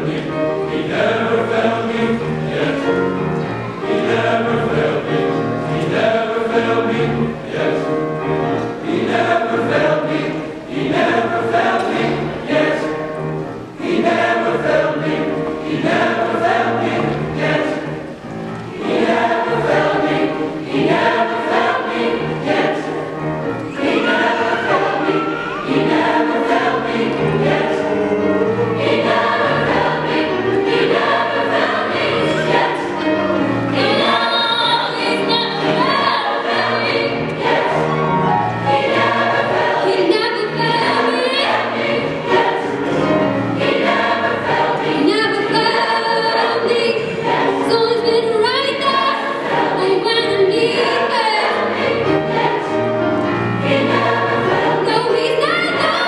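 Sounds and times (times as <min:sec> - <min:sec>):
large choir singing: 0:00.0 - 0:56.0
piano accompaniment: 0:00.0 - 0:56.0.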